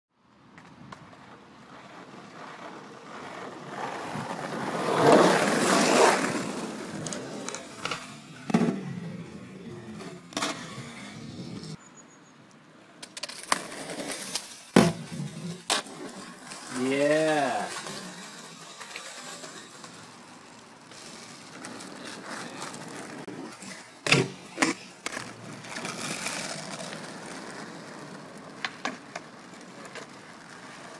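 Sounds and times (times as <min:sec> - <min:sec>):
skateboard wheels rolling on asphalt: 0:00.2 - 0:30.9
skateboard wooden clacks: 0:24.0 - 0:30.9.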